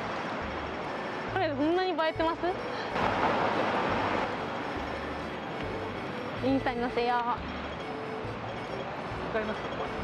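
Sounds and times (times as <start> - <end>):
low traffic hum: 0.0 - 10.0.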